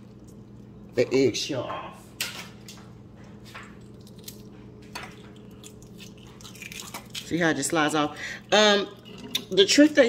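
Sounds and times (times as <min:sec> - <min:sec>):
eggshell peeling squishes: 0:04.0 - 0:07.9
eggshell crackling: 0:04.0 - 0:10.0.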